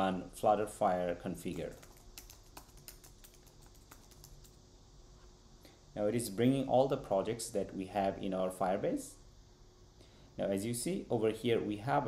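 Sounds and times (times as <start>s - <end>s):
computer keyboard keystrokes: 1.5s - 4.6s.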